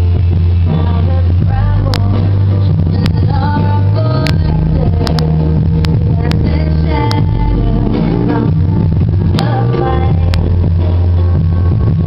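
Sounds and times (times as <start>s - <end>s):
music through computer speakers: 0.0s - 12.0s.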